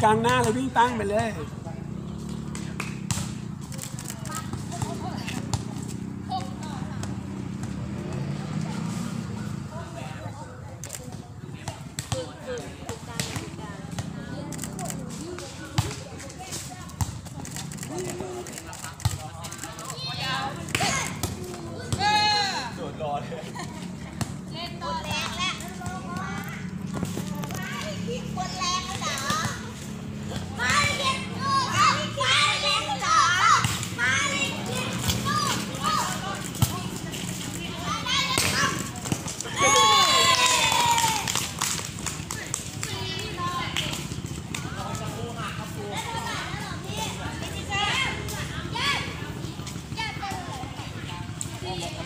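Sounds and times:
volleyball thudding on concrete: 0:00.1 - 0:01.4, 0:02.2 - 0:07.8, 0:11.1 - 0:22.5, 0:24.1 - 0:28.0, 0:35.0 - 0:37.4, 0:38.0 - 0:40.2
people calling out: 0:37.5 - 0:41.5.

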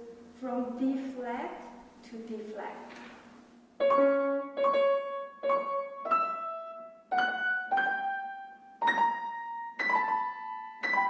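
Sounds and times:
piano notes ringing: 0:03.8 - 0:11.0.

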